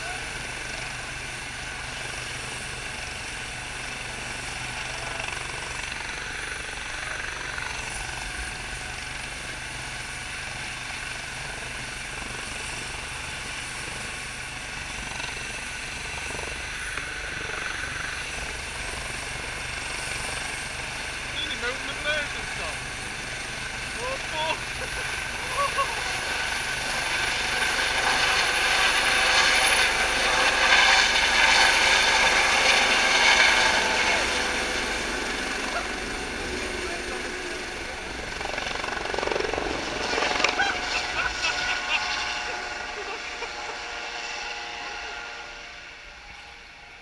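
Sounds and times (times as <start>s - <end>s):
helicopter engine whine: 0.0s - 47.0s.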